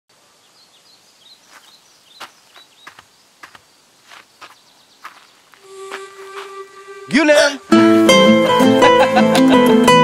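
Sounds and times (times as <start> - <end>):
small birds chirping: 0.1 - 5.6
steady outdoor hiss: 0.1 - 10.0.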